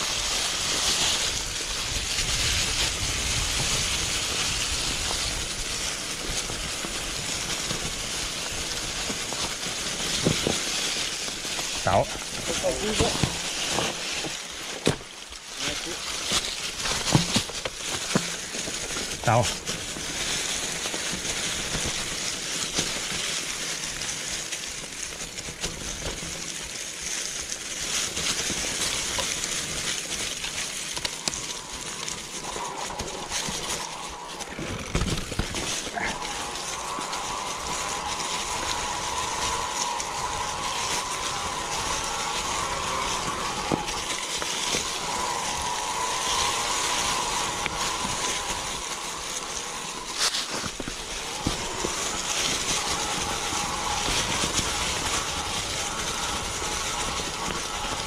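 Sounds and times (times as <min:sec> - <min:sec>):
bike tyres hissing over leaves: 0:00.0 - 0:58.0
bike whirr: 0:00.0 - 0:58.0.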